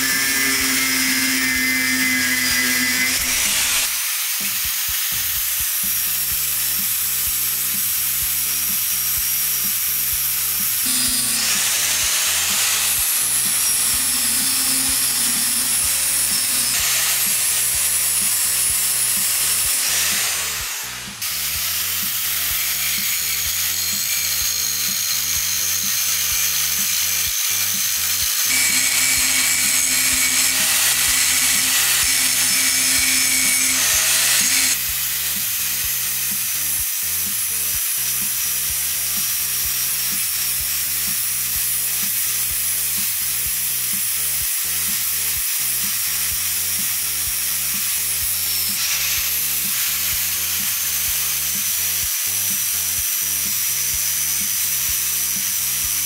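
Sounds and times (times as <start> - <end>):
angle grinder grinding steel: 0.0 - 56.0.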